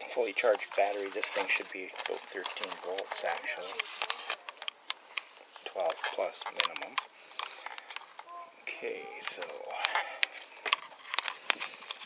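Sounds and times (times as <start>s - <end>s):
person speaking: 0.0s - 4.7s, 5.5s - 10.9s.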